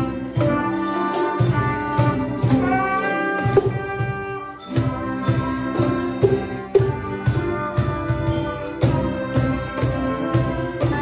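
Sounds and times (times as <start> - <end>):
percussion hits: 0.0 - 11.0
school ensemble playing a tune: 0.0 - 11.0.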